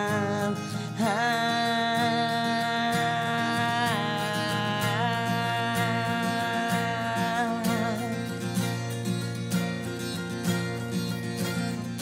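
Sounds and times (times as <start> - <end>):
acoustic guitars strummed: 0.0 - 12.0.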